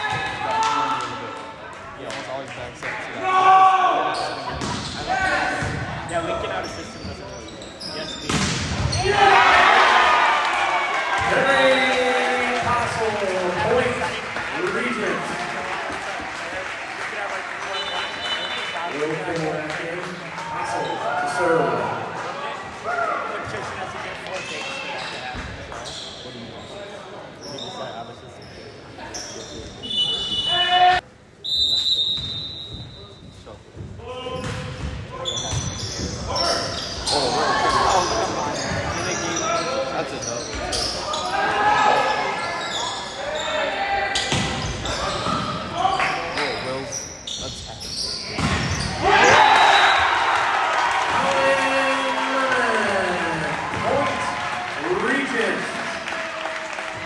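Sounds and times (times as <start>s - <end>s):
shouts and chatter in hall: 0.0s - 57.0s
spectators cheering: 9.0s - 19.0s, 48.9s - 57.0s.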